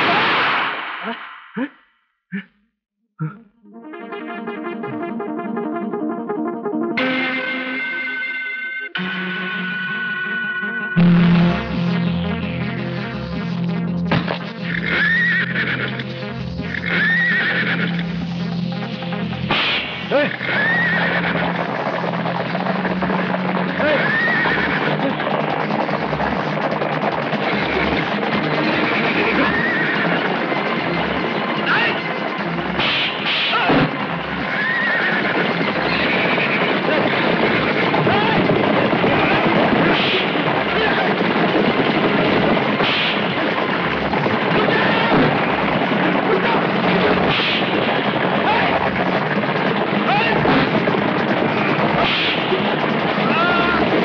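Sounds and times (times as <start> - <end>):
horses hooves galloping: 11.5 - 54.0
horses neighing: 14.6 - 18.6, 20.0 - 26.2, 27.3 - 32.8, 33.5 - 41.5.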